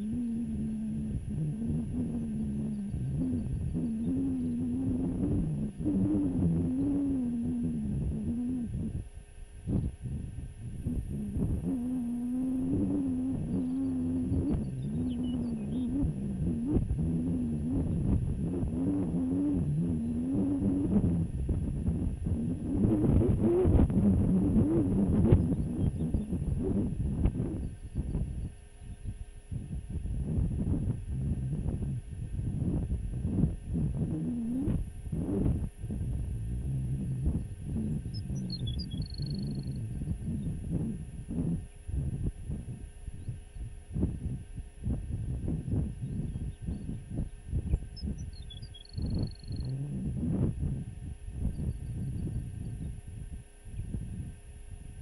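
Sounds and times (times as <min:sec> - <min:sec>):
low wavering moan: 0:00.0 - 0:09.1, 0:09.7 - 0:48.2, 0:49.0 - 0:53.0
wind buffeting microphone: 0:12.6 - 0:48.3
faint high chirps: 0:37.2 - 0:41.6, 0:47.9 - 0:50.4.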